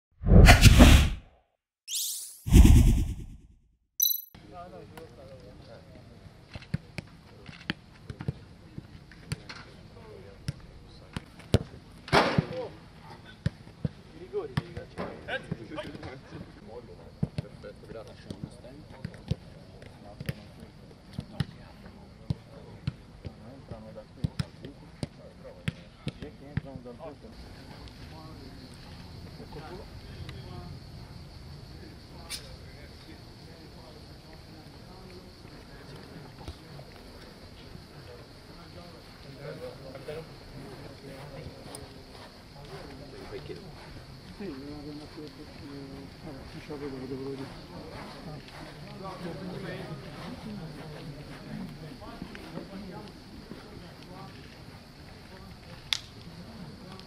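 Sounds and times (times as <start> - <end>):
whooshing intro sweeps: 0.2 - 1.3, 1.9 - 3.6.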